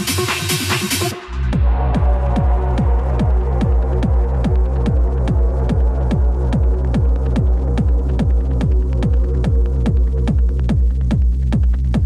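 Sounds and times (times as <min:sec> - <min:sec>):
deep bass tone: 0:01.1 - 0:12.0
kick drum: 0:01.6 - 0:12.0.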